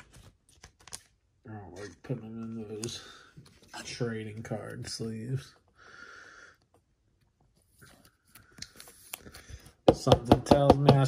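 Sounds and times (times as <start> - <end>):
plastic card sleeve rustling: 0.0 - 5.3, 7.2 - 9.8.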